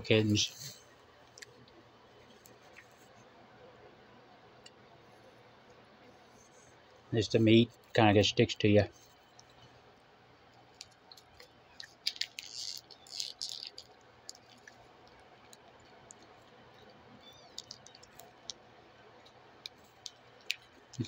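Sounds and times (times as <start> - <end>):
crackling: 10.5 - 21.0
wet chewing mouth clicks: 10.8 - 18.6.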